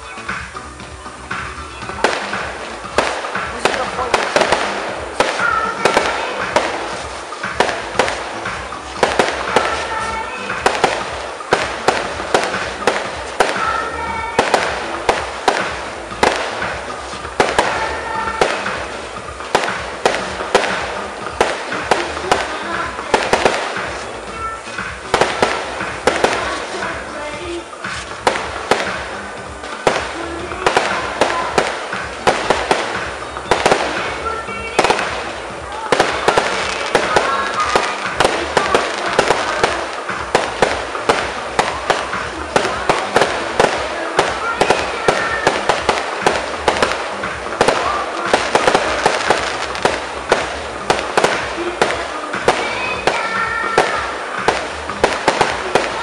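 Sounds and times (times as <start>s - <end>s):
fireworks bangs and crackles: 0.0s - 56.0s.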